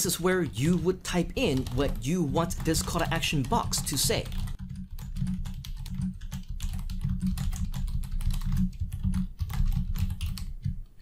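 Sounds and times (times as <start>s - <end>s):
fast typing on keyboard: 0.1s - 10.9s.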